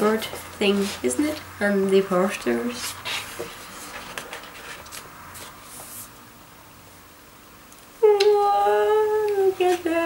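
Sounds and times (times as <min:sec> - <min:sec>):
woman humming: 0:08.0 - 0:10.0.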